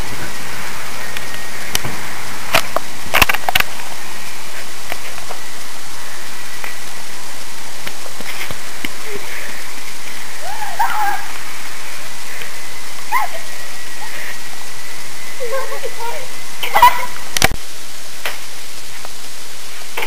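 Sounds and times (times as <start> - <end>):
loud hiss: 0.0 - 20.0
girl crying out: 10.4 - 11.3, 13.1 - 13.5.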